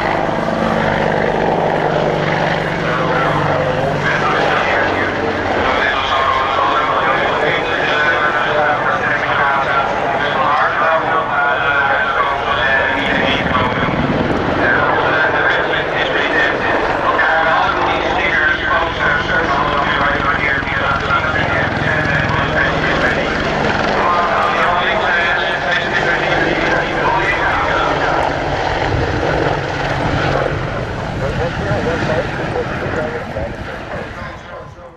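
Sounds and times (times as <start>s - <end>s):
helicopter engines and rotors: 0.0s - 34.9s.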